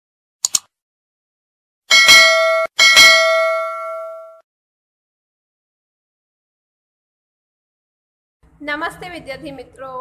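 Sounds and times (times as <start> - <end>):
notification bell ding: 1.9 - 4.4.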